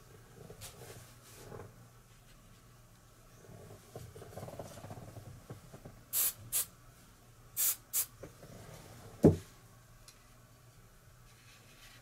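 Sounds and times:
aerosol can hissing: 6.1s - 6.7s, 7.6s - 8.1s.

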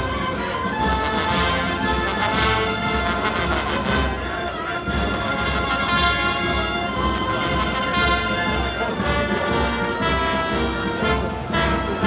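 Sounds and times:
wind band playing a march: 0.0s - 12.0s.

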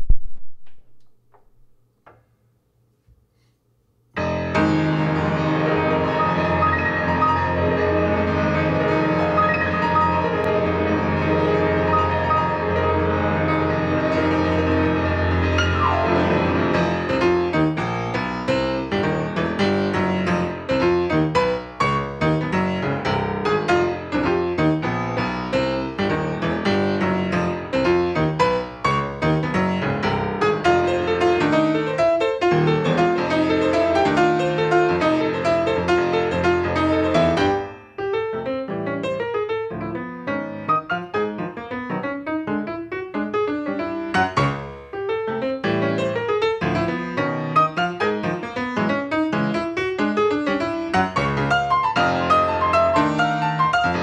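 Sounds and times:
latin jazz piano: 4.2s - 54.0s.

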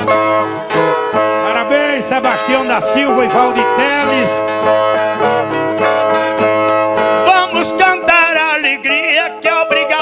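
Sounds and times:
strummed string chords: 0.0s - 9.1s.

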